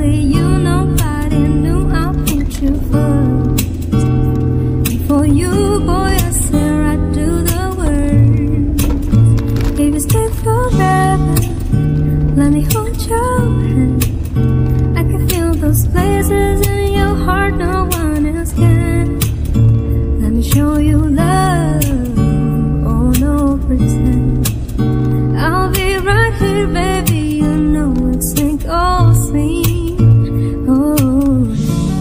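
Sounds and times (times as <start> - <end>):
background music: 0.0 - 32.0.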